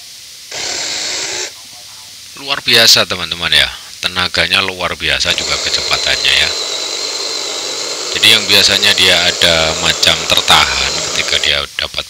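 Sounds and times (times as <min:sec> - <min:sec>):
mini chainsaw whirring: 0:00.5 - 0:01.5, 0:05.3 - 0:11.5.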